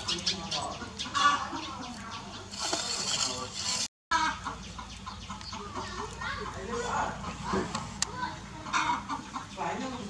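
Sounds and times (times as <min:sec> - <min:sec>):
bird calls: 0:00.0 - 0:10.0.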